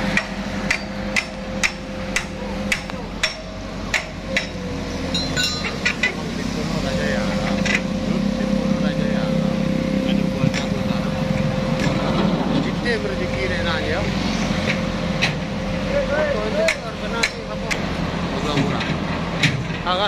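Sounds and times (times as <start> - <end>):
crane engine running: 0.0 - 20.0
sharp metallic knocks: 0.1 - 6.3, 16.6 - 17.8.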